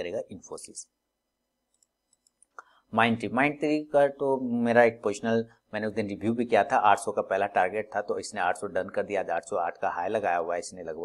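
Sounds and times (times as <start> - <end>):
man speaking: 0.0 - 1.0, 2.9 - 11.0
computer mouse clicks: 1.7 - 2.8.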